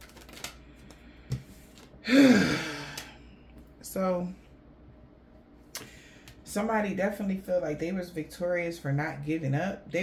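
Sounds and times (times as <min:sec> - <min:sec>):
woman sighing: 0:02.0 - 0:03.3.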